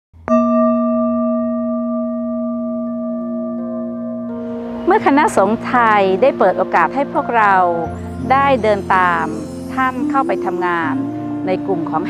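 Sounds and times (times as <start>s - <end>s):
singing bowl ringing: 0.3s - 11.5s.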